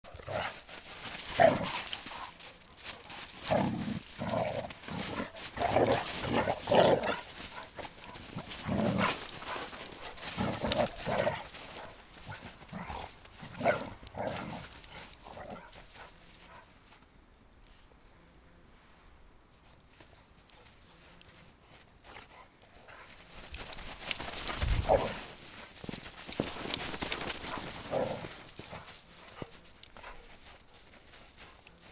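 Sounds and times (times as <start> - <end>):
dogs barking playfully: 0.1 - 16.7, 23.7 - 25.4.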